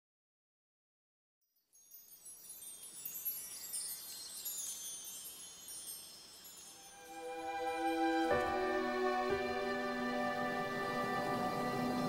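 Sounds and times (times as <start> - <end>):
high-pitched chimes tinkling: 1.4 - 8.4.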